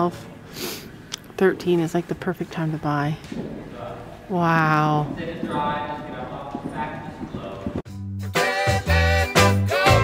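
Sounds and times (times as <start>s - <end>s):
hoofbeats on soft sand: 5.0s - 7.8s.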